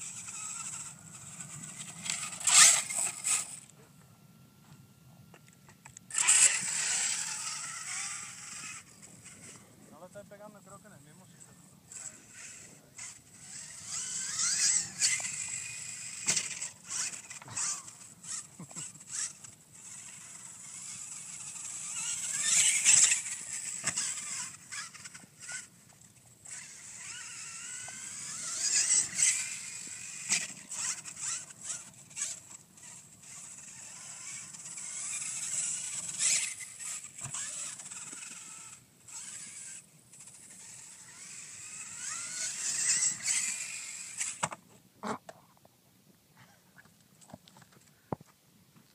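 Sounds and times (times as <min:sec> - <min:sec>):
electric motor whining: 0:00.0 - 0:04.8, 0:05.4 - 0:44.6.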